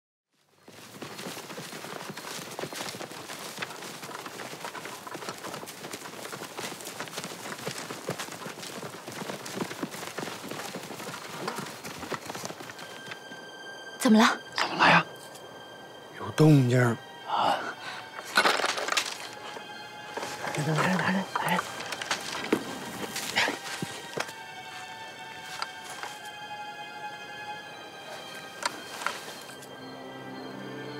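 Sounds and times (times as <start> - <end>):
footsteps crunching dry leaves: 0.4 - 12.9, 18.8 - 26.4.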